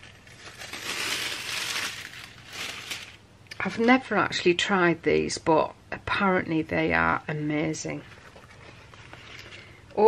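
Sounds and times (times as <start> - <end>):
foil peeling with crinkling rustle: 0.0 - 3.2.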